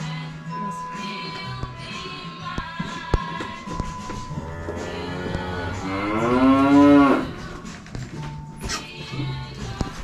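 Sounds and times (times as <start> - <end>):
cow mooing: 4.3 - 7.4.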